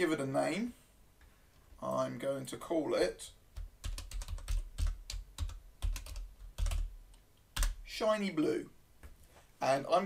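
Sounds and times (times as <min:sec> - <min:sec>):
typing on computer keyboard: 0:03.6 - 0:06.9, 0:07.6 - 0:07.8.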